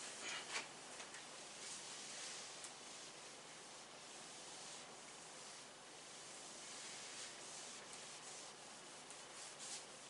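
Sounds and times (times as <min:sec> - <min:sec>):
cloth rubbing on whiteboard: 0:01.3 - 0:10.0.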